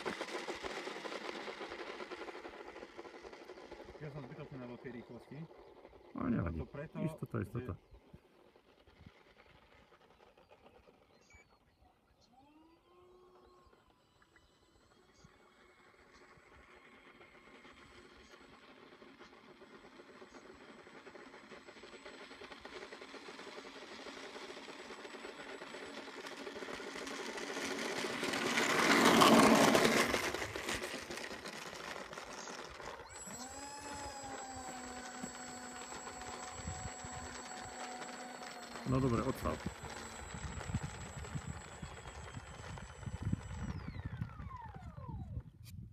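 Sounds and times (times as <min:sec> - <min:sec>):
model jet fans whining: 0:00.0 - 0:45.7.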